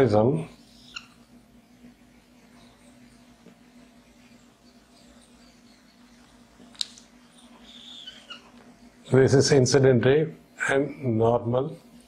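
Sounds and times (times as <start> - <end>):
marker squeaking on whiteboard: 0.7 - 1.3, 4.0 - 9.0.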